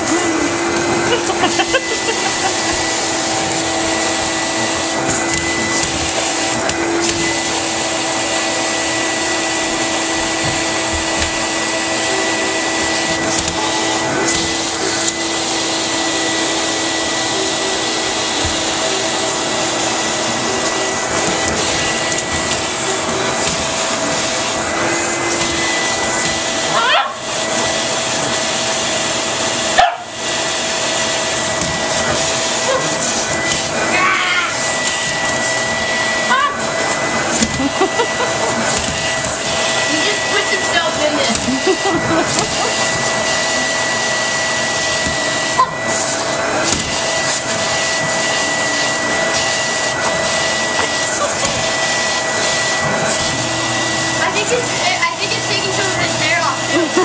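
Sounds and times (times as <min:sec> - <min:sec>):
vacuum cleaner running: 0:00.0 - 0:57.0.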